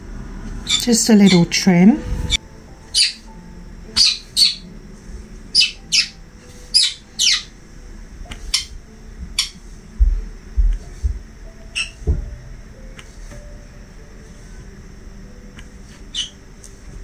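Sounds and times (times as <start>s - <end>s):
bird chirping: 0.6s - 1.5s, 2.2s - 3.3s, 4.0s - 4.7s, 5.5s - 7.5s, 9.4s - 9.6s, 11.7s - 12.0s, 16.1s - 16.4s.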